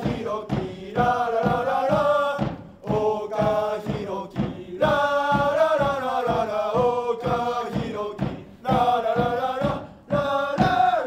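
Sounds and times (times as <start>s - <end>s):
bass drum beat: 0.0s - 11.0s
crowd singing in unison: 0.0s - 11.0s.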